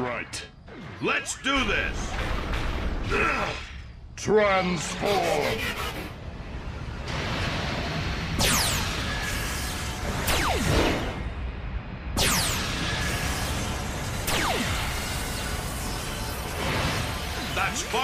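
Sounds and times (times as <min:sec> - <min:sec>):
sci-fi soundtrack music: 0:00.0 - 0:18.0.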